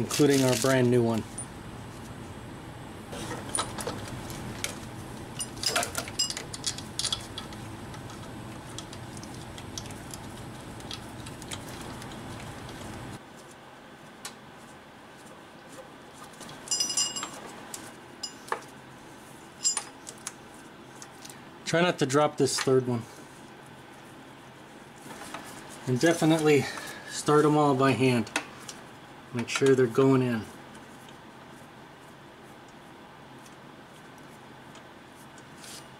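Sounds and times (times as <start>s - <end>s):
steady low hum: 0.0s - 35.9s
metal bolts clinking: 5.4s - 7.5s.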